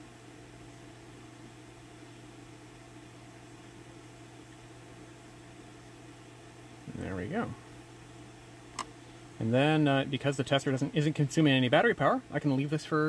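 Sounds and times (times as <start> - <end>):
mains hum: 0.0 - 13.0.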